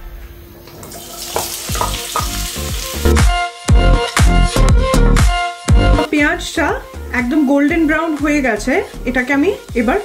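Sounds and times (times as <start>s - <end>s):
onions sizzling in oil: 0.9s - 3.2s
background music with beat: 1.4s - 10.0s.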